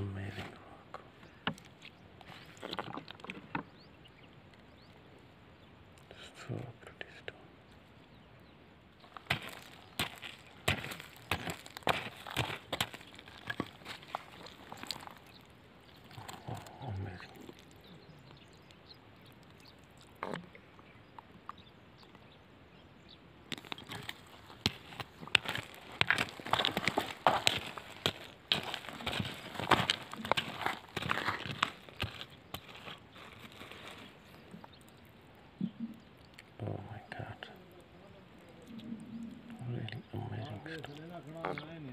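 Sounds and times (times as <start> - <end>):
pebbles clicking and scraping: 1.5 - 3.7, 9.0 - 20.4, 23.5 - 35.0.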